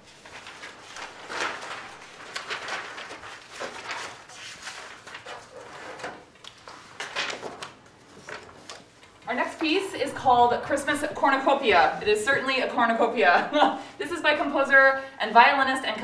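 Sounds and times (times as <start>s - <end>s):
rustling: 0.0s - 9.0s.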